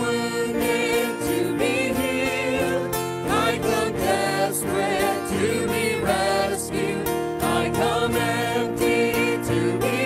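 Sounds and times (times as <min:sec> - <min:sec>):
group singing a hymn in harmony: 0:00.0 - 0:10.0
instrumental backing: 0:00.0 - 0:10.0.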